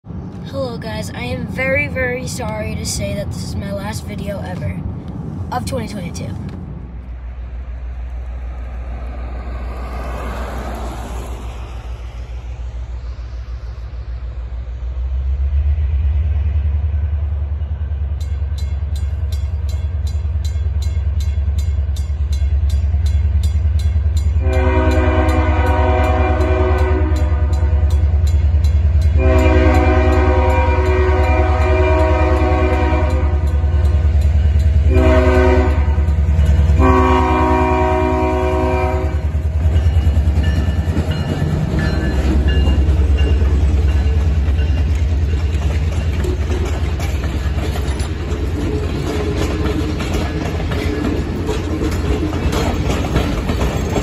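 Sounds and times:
diesel locomotive engine rumble: 0.0s - 54.0s
passenger cars rolling past: 6.3s - 54.0s
train horn: 24.4s - 28.0s, 29.1s - 33.6s, 34.8s - 36.1s, 36.8s - 39.3s.

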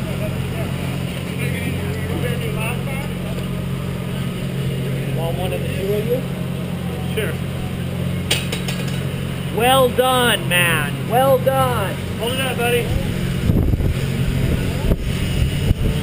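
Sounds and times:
faint voices talking: 0.0s - 8.3s
steady low hum: 0.0s - 16.0s.

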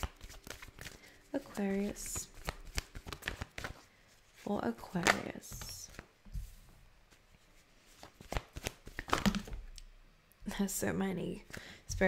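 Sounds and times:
cards rustling: 0.0s - 6.1s, 7.6s - 9.6s
crisp card snaps: 2.0s - 3.7s, 8.2s - 9.9s.

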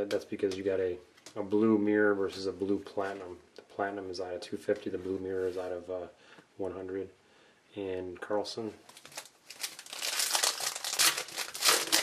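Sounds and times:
foil wrapper crinkling: 8.9s - 12.0s.

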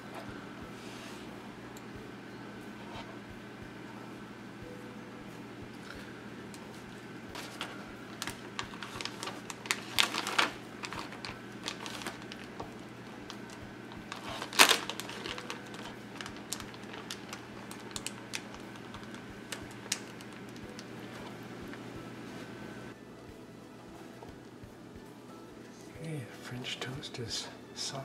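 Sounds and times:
plastic bag crinkling: 7.3s - 21.4s
zipper clicks and crackles: 14.1s - 20.2s.

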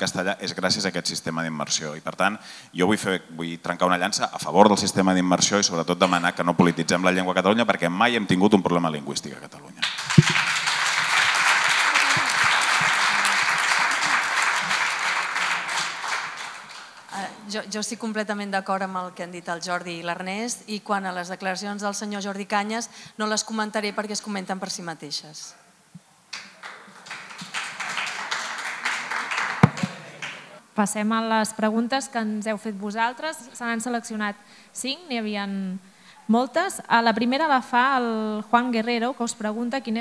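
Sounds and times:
audience applauding: 9.8s - 17.2s, 26.3s - 30.6s.

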